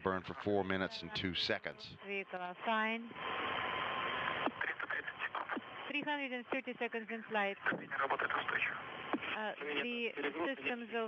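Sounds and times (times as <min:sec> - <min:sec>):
faint radio voices: 0:00.0 - 0:11.0
radio channel hiss: 0:00.0 - 0:11.0
radio click: 0:03.6 - 0:06.6.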